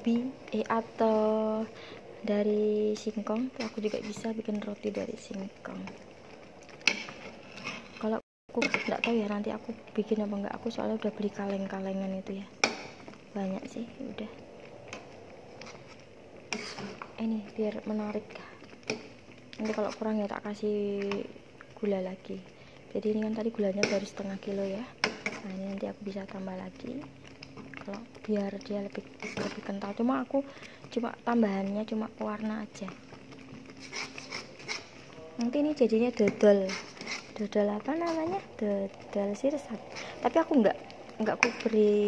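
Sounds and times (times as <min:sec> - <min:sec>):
low steady simmering hiss: 0:00.0 - 0:42.0
spoon scraping and squelching jam: 0:03.3 - 0:09.4, 0:14.9 - 0:20.2, 0:27.2 - 0:30.0, 0:32.9 - 0:38.6
metal spatula scraping frying pan: 0:03.5 - 0:04.4, 0:06.7 - 0:09.2, 0:15.6 - 0:17.1, 0:33.6 - 0:35.2, 0:36.1 - 0:38.4.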